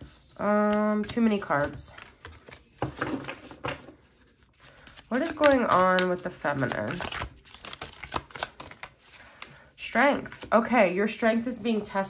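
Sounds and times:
cards being shuffled: 0.0 - 10.5.

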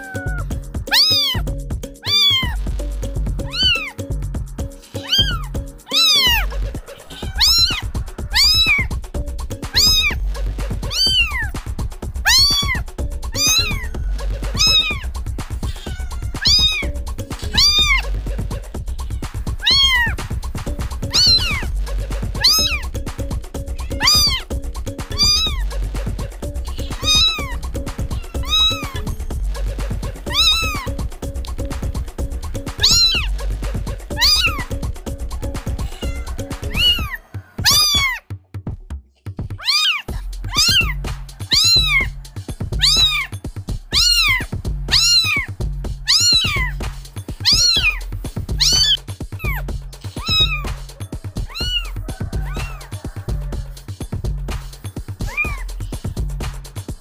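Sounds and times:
kittens meowing: 0.0 - 2.7, 3.4 - 4.0, 4.8 - 38.3, 39.6 - 53.9, 55.1 - 56.3
background music with bass: 0.0 - 57.0.

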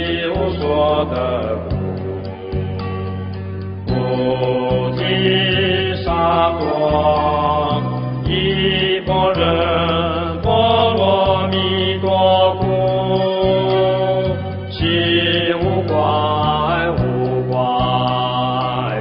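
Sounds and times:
devotional chant music: 0.0 - 19.0
steady low drone: 0.0 - 19.0.

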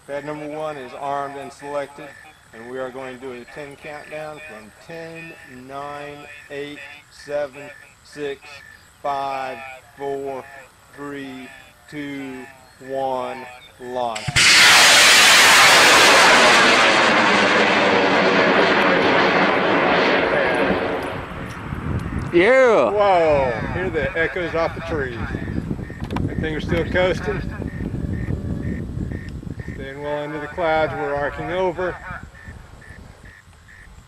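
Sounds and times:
rocket motor rushing: 14.2 - 21.7
low rumble: 14.3 - 22.4.

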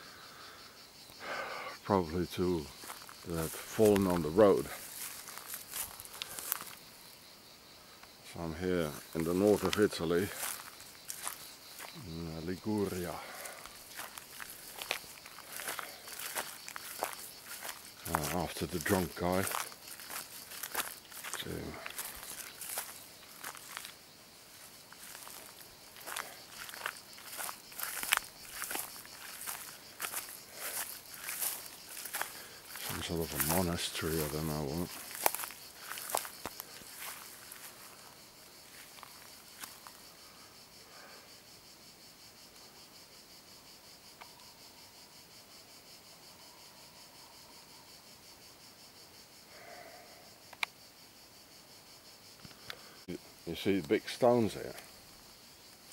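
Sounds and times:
crickets chirping: 0.0 - 55.9
footsteps through tall grass: 2.0 - 7.4, 8.5 - 40.2
small click: 50.5 - 50.7.

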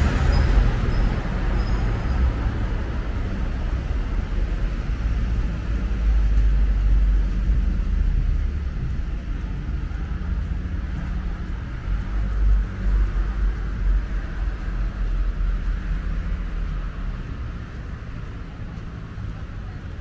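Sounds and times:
cars driving past: 0.0 - 20.0.

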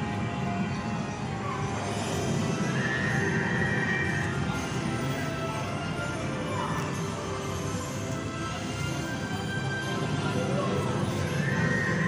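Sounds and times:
ride soundtrack music and effects: 0.0 - 12.0.

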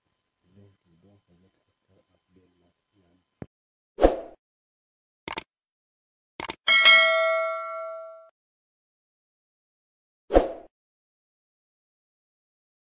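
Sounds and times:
double mouse click: 5.3 - 5.5, 6.4 - 6.6
bright bell ding: 6.7 - 8.3.

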